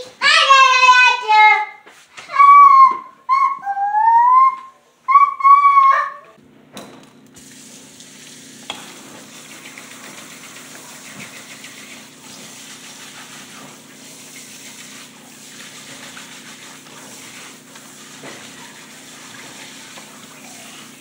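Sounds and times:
water spraying into sink: 0:07.4 - 0:21.0.

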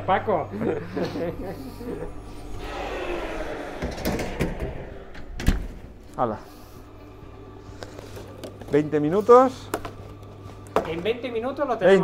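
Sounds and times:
kitchen room noise: 0:00.0 - 0:12.0.

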